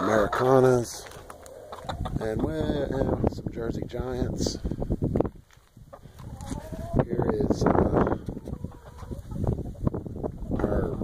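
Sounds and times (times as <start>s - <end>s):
hens clucking: 0.0s - 3.2s, 5.8s - 11.0s.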